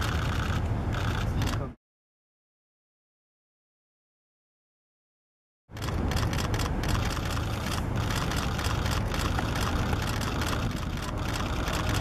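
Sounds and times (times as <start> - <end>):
scattered clicks: 0.0 - 1.7, 5.8 - 12.0
engine idling close by: 5.8 - 12.0.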